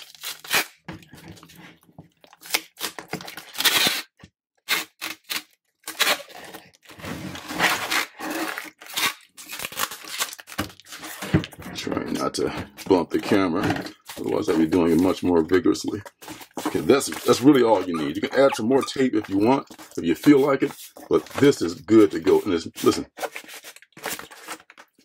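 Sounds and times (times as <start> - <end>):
packing tape rasping off tape gun: 2.5 - 4.1, 4.7 - 6.6, 7.4 - 11.3.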